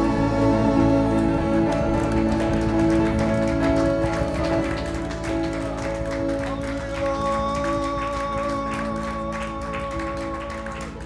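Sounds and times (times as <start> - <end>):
guitar: 0.0 - 11.0
keyboard chords: 0.0 - 11.0.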